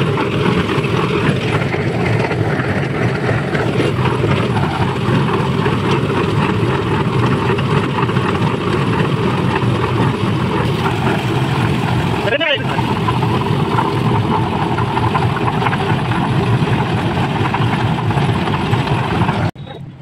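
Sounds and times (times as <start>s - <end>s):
wet concrete pouring: 0.0s - 19.5s
concrete mixer engine running: 0.0s - 20.0s.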